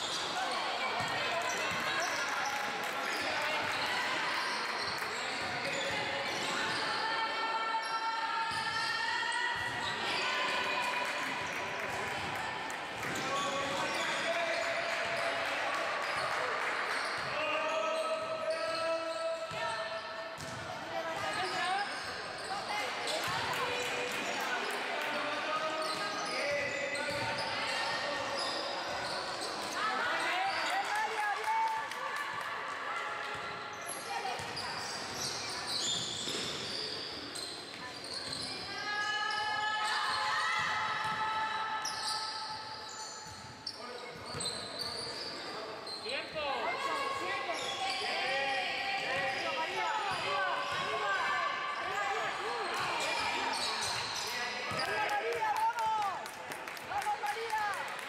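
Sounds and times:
basketball bouncing on court: 0:20.4 - 0:21.6, 0:27.0 - 0:27.4.

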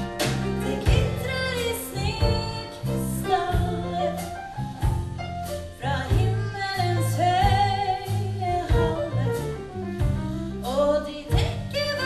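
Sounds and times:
live band: 0:00.0 - 0:12.0
low bass notes: 0:00.0 - 0:12.0
woman singing into microphone: 0:00.4 - 0:04.6, 0:05.8 - 0:09.7, 0:10.6 - 0:12.0.

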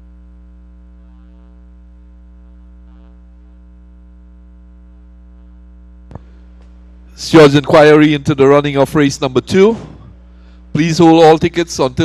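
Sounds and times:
electrical hum and buzz: 0:00.0 - 0:12.0.

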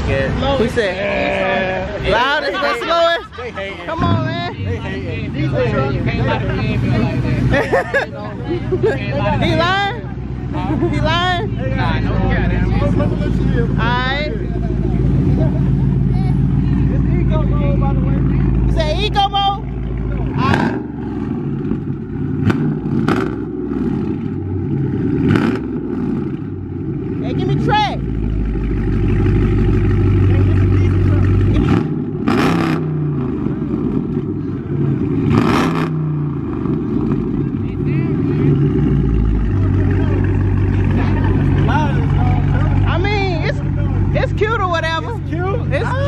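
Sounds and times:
car engine revving: 0:00.0 - 0:46.0.

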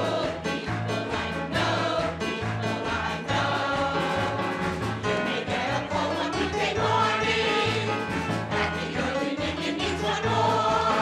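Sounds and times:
group singing: 0:00.0 - 0:11.0
live band: 0:00.1 - 0:05.7, 0:06.6 - 0:09.3.

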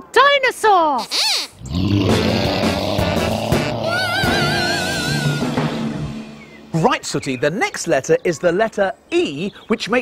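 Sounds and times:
cartoon dinosaur roar: 0:01.6 - 0:05.5
music: 0:02.1 - 0:06.9.

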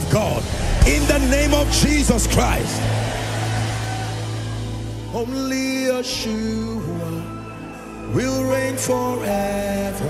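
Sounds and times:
congregation noise: 0:00.0 - 0:10.0.

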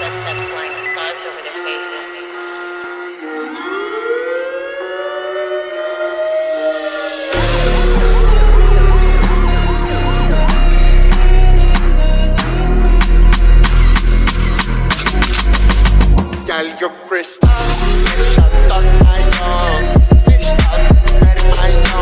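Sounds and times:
siren-like synth glide: 0:01.6 - 0:14.3
heavy bass line and drum beat: 0:07.3 - 0:16.5, 0:17.4 - 0:22.0.

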